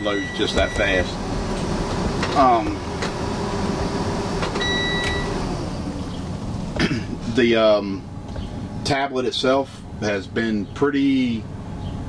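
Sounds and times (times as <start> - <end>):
bus engine rumble: 0.0 - 12.0
short electronic beep: 4.6 - 5.4.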